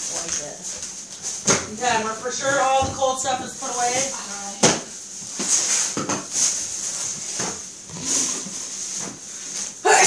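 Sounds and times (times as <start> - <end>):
plastic packaging crinkling: 3.5 - 9.9.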